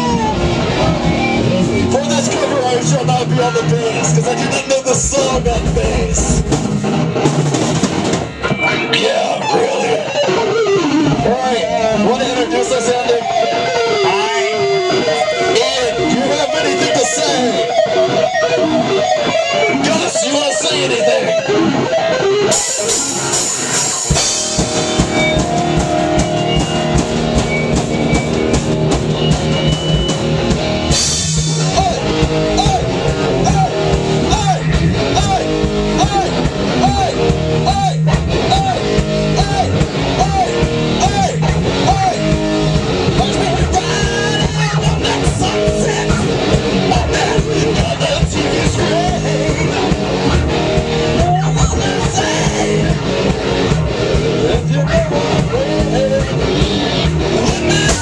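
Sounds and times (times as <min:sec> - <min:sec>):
drum kit: 0:00.0 - 0:12.1, 0:21.4 - 0:58.0
distorted electric guitars: 0:00.0 - 0:58.0.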